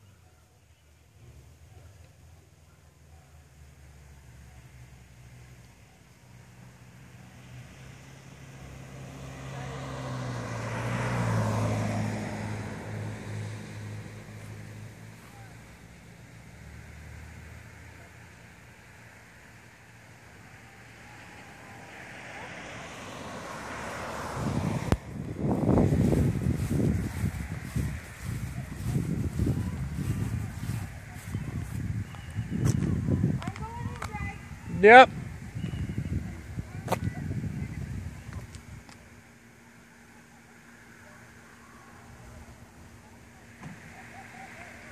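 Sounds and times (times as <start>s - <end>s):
faint traffic: 0.0s - 44.9s
car passing: 2.2s - 44.9s.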